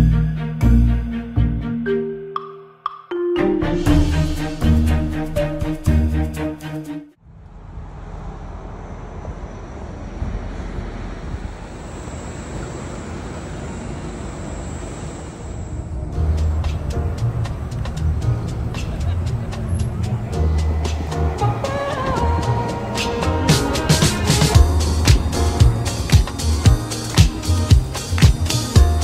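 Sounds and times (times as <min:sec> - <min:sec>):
vehicle rumble and hiss: 0:07.2 - 0:29.0
faint high whine: 0:07.4 - 0:17.8
background music with bass beat: 0:16.2 - 0:29.0.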